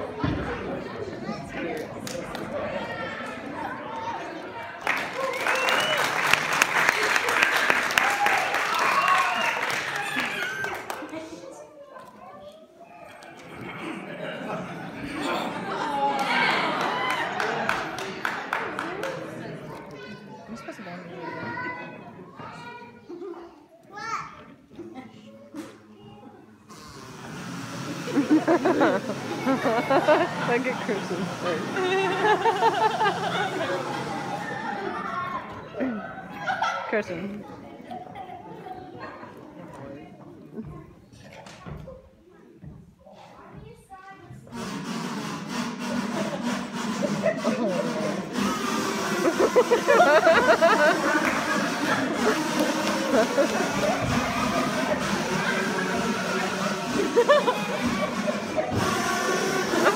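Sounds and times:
audience voices: 0.0 - 59.9
kazoos buzzing together: 44.5 - 59.9.

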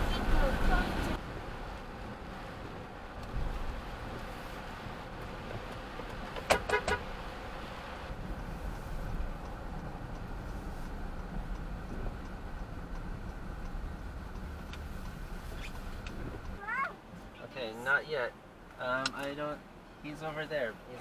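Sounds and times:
car driving road noise: 0.0 - 21.0
vehicle horn tooting: 6.5 - 7.1.

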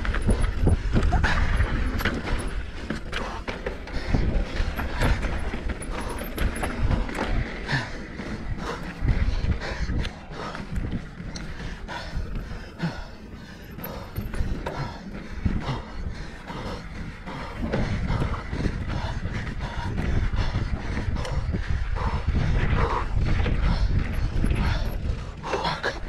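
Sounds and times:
bike rattling over bumps: 0.0 - 26.0
wind rumbling on microphone: 0.0 - 26.0.

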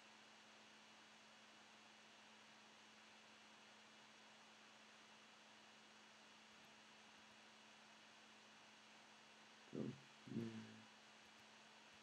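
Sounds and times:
faint steady hiss: 0.0 - 12.0
low steady hum: 0.0 - 12.0.

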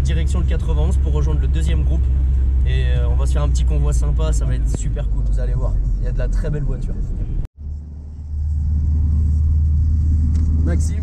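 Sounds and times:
tyres on wet road: 0.0 - 5.9
car engine drone: 0.0 - 11.0.

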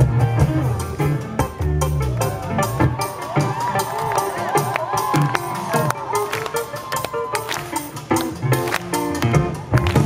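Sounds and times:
live rock band playing: 0.0 - 10.0.

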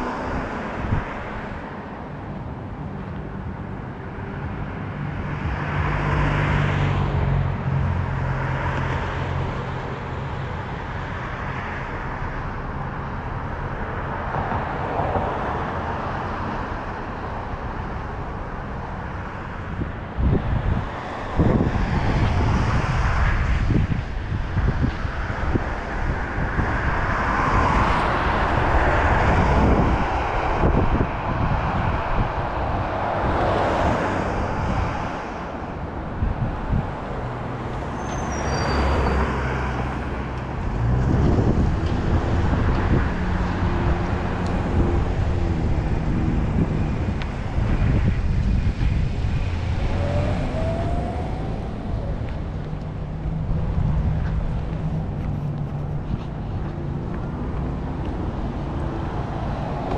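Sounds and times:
cars passing: 0.0 - 59.9
wind buffeting microphone: 18.6 - 38.0, 39.4 - 59.9.

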